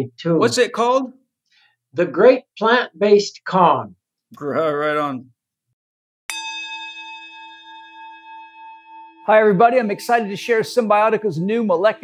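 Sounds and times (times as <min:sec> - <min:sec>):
bell chime ringing: 0:06.3 - 0:12.0.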